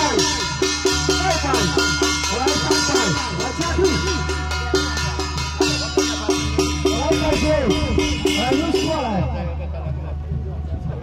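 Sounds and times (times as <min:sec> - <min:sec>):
bell-like metal percussion beating: 0:00.0 - 0:11.0
pitched music: 0:00.0 - 0:11.0.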